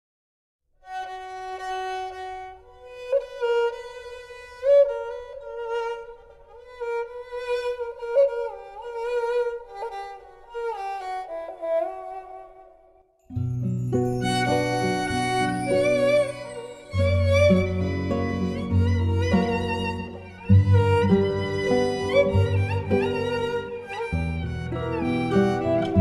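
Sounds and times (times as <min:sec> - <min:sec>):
bowed spike fiddle melody: 0:13.3 - 0:26.0.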